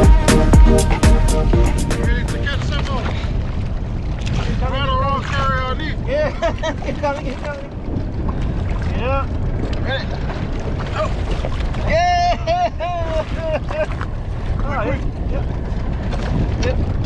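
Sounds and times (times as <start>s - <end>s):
moving water: 0.0s - 17.0s
wind rumble on microphone: 1.4s - 17.0s
men calling between boats: 1.6s - 3.4s, 4.4s - 7.8s, 8.8s - 10.2s, 10.8s - 15.6s.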